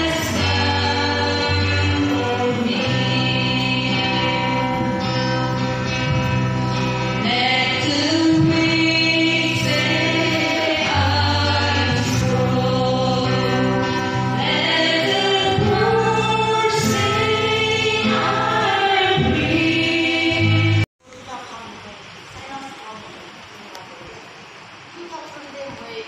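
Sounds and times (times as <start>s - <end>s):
woman singing into a microphone: 0.0s - 5.1s, 7.2s - 20.8s
women's choir singing a hymn: 0.0s - 5.6s, 7.2s - 20.9s
electric guitar: 0.0s - 20.8s.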